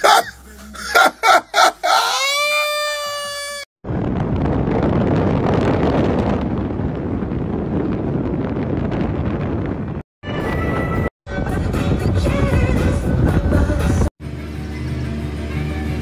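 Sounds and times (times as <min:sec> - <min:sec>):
man laughing: 0:00.0 - 0:03.0
high-pitched held cry: 0:00.0 - 0:03.7
wind and road noise from car: 0:03.8 - 0:16.0.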